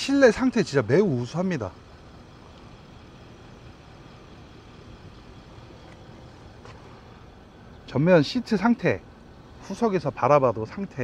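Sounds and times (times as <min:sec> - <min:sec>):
car air-conditioning hiss and hum: 0:00.0 - 0:11.0.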